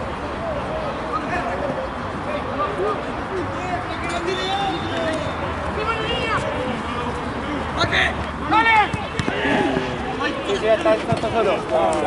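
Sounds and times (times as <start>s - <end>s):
voices calling out and talking: 0.0s - 12.0s.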